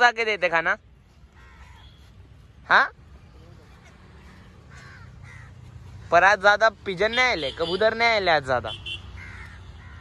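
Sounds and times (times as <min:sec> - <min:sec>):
crows cawing faintly: 0:01.0 - 0:06.7, 0:08.8 - 0:10.0.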